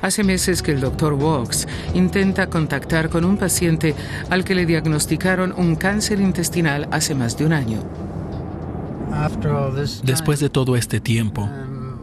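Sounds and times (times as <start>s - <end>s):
car road and engine noise: 0.0s - 12.0s
man talking: 9.1s - 12.0s.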